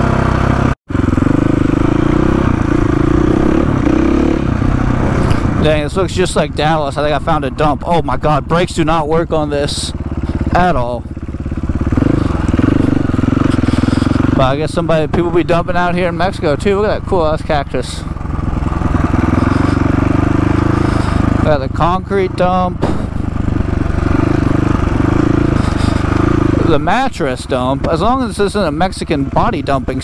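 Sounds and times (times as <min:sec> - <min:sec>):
dirt bike engine revving: 0:00.0 - 0:30.0.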